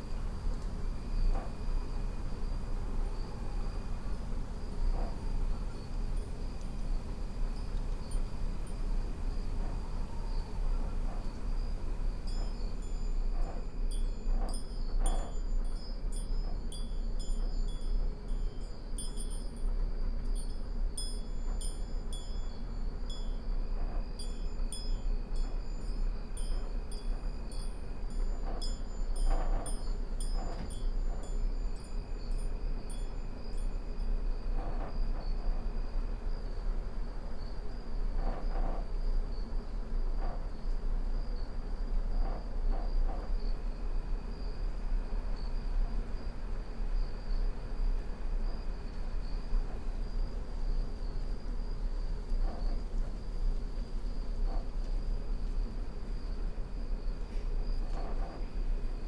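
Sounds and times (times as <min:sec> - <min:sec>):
crickets trilling: 0:00.0 - 0:59.0
low steady rumble: 0:00.0 - 0:59.0
wind chime tinkling: 0:12.3 - 0:23.6, 0:24.2 - 0:33.8.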